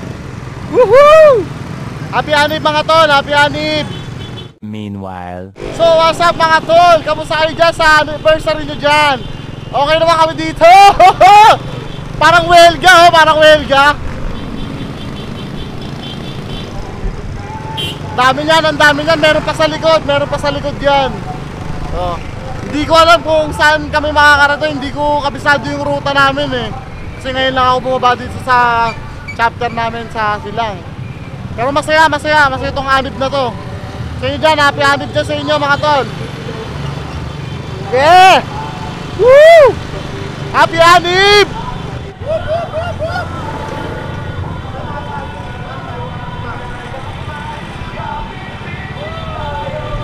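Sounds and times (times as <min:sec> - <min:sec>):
road noise: 0:00.0 - 0:50.0
loud shout: 0:00.7 - 0:01.5, 0:10.4 - 0:11.6, 0:17.4 - 0:18.2, 0:39.1 - 0:39.8, 0:42.2 - 0:43.5, 0:48.9 - 0:50.0.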